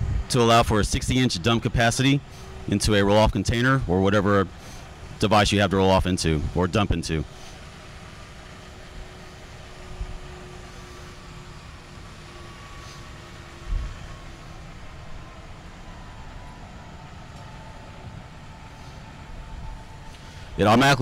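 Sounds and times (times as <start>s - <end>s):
vacuum truck running: 0.0s - 21.0s.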